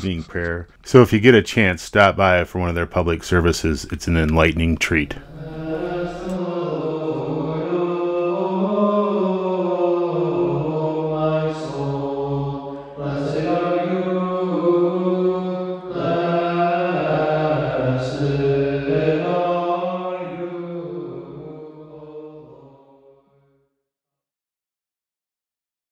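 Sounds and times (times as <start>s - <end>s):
man chanting: 0.0s - 9.1s.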